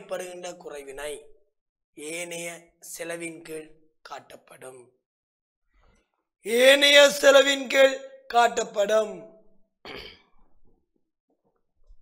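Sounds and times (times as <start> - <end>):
man talking: 0.0 - 1.2, 2.0 - 4.9, 6.5 - 9.3.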